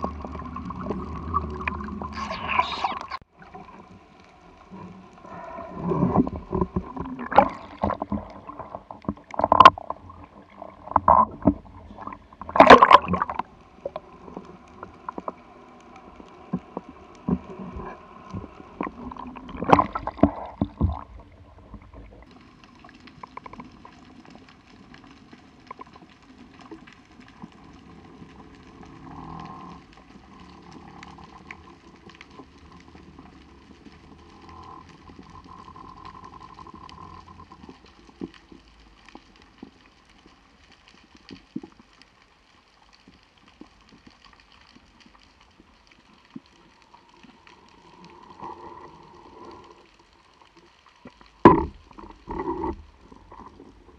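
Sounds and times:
muffled underwater hush: 0:00.0 - 0:22.3
water splashing and gurgling: 0:00.0 - 0:53.9
faint clicks: 0:10.8 - 0:20.8, 0:21.7 - 0:53.9.

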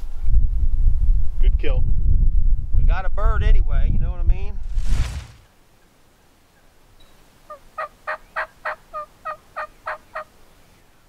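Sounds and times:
wild turkey yelping: 0:07.5 - 0:10.3.

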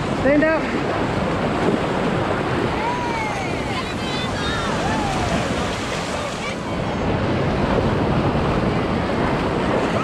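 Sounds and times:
ocean surf breaking: 0:00.0 - 0:10.0
wind on microphone: 0:00.0 - 0:10.0.

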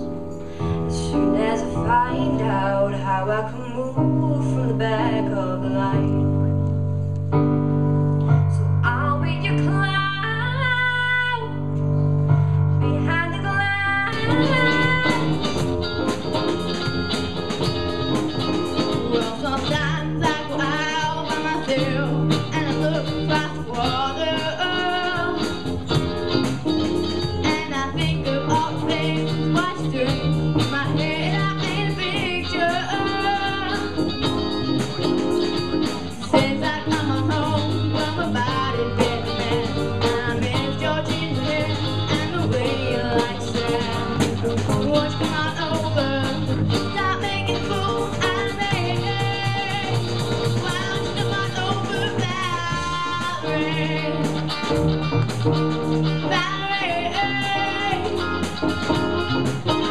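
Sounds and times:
live rock band: 0:00.0 - 0:59.9
sustained keyboard chords: 0:00.0 - 0:59.9
girl singing: 0:00.9 - 0:06.2, 0:08.8 - 0:11.7, 0:12.8 - 0:15.6, 0:18.8 - 0:25.6, 0:27.4 - 0:34.6, 0:36.2 - 0:54.5, 0:56.2 - 0:58.4.

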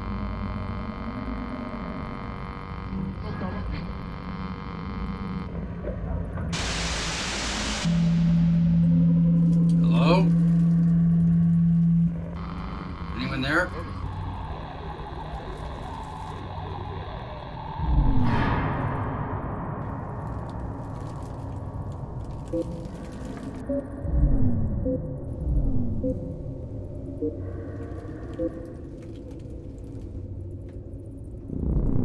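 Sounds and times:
low drone: 0:00.0 - 0:32.0.

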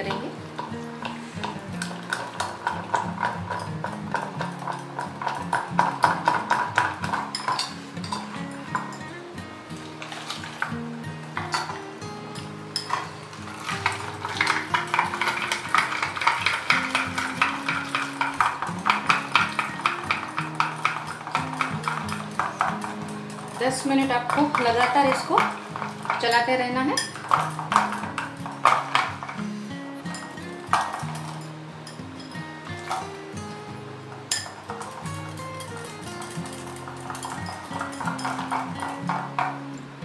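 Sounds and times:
instrumental background music: 0:00.0 - 0:40.0
whisk clinking against glass bowl: 0:13.6 - 0:29.4, 0:34.3 - 0:39.6.

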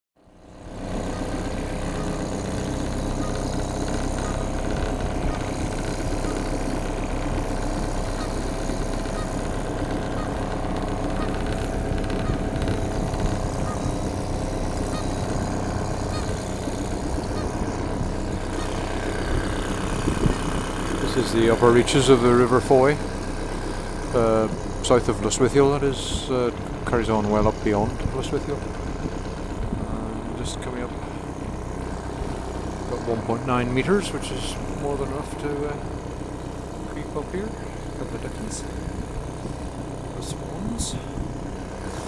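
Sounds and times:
outboard motor running: 0:00.2 - 0:42.0.

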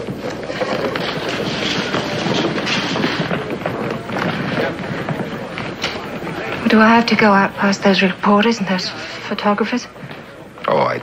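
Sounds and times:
murmured chatter: 0:00.0 - 0:11.0
shuffling footsteps: 0:00.0 - 0:11.0.

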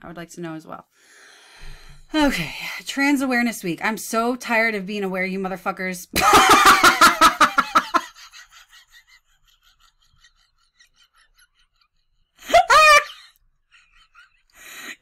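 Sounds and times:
woman laughing: 0:06.2 - 0:14.5
high-pitched squeal of laughter: 0:12.4 - 0:13.3.

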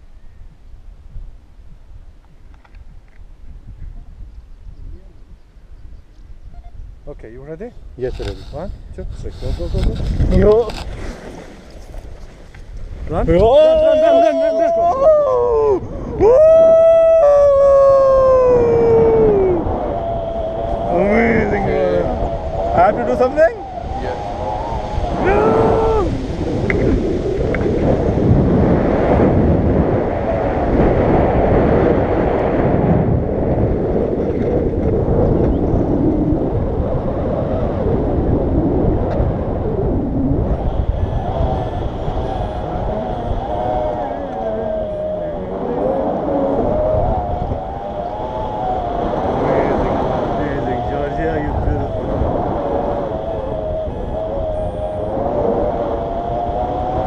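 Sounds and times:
wind buffeting microphone: 0:00.0 - 0:57.0
whistle-like howling tones: 0:13.6 - 0:26.8, 0:40.4 - 0:49.6, 0:50.6 - 0:57.0.

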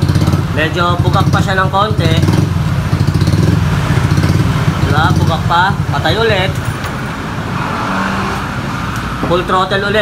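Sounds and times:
scooter engine idling: 0:00.0 - 0:07.2.

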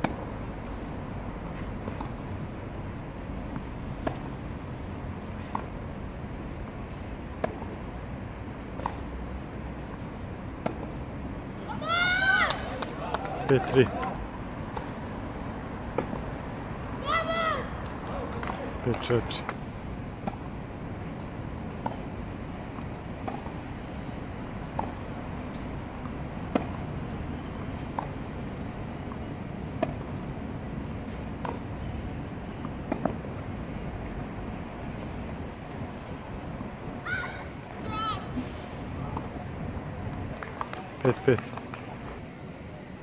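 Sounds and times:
outdoor background noise: 0:00.0 - 0:43.0.

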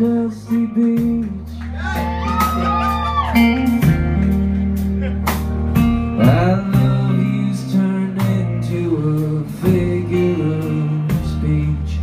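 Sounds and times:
acoustic and electric guitars: 0:00.0 - 0:12.0
drum kit: 0:00.0 - 0:12.0
keyboard chords: 0:00.0 - 0:12.0.

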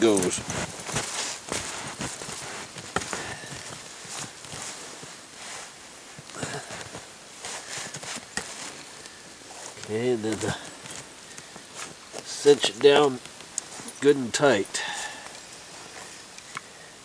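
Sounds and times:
snow crunching: 0:00.0 - 0:16.3
boughs rustling: 0:00.0 - 0:16.7.

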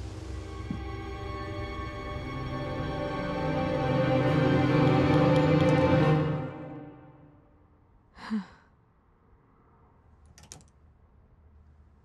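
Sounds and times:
woman sighing: 0:08.1 - 0:08.8.

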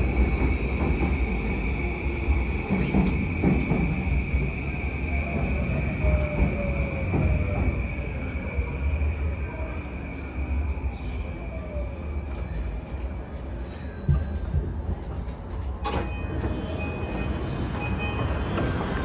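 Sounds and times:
electric train rumble: 0:00.0 - 0:19.0
faint high squeal: 0:03.8 - 0:15.2.

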